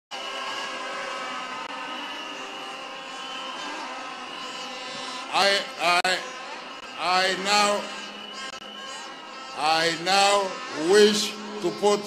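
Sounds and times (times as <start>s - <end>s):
stadium crowd din: 0.1s - 12.0s.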